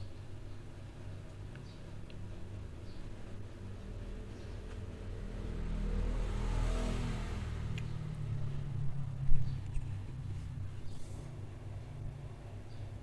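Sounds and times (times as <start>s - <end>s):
vehicle engine and road rumble: 1.4s - 13.0s.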